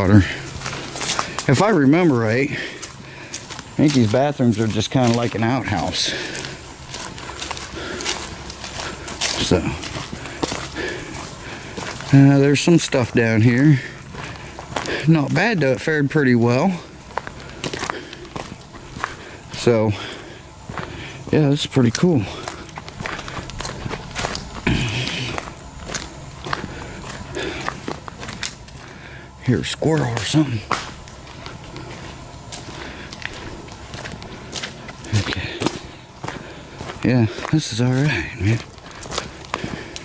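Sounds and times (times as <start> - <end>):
footsteps crunching on dry leaves: 0.0 - 40.0.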